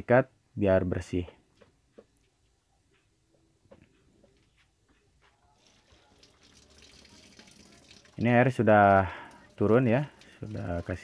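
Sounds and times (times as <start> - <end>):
water running into plastic tub: 5.6 - 11.0.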